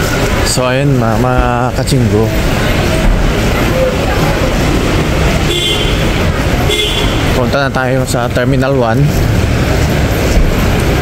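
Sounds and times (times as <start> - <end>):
steady road traffic rumble: 0.0 - 11.0.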